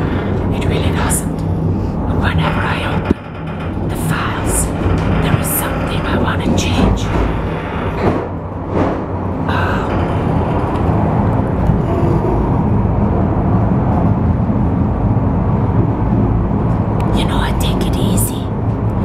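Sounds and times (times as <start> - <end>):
knocks: 0.0 - 12.6
cable car rumbling: 0.0 - 19.0
mechanical hum: 0.0 - 19.0.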